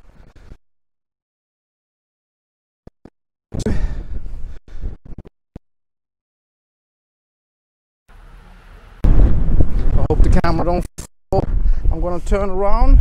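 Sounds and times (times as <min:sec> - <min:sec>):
wind noise on microphone: 0:08.4 - 0:13.0.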